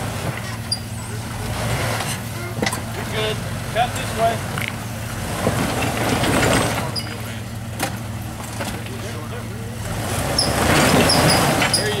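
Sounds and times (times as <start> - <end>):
engine droning at low speed: 0.0 - 12.0
tyres grinding over stones: 4.5 - 7.4, 10.0 - 12.0.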